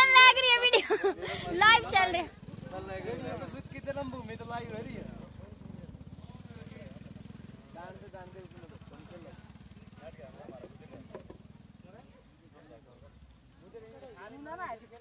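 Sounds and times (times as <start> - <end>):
people talking: 0.0 - 2.3.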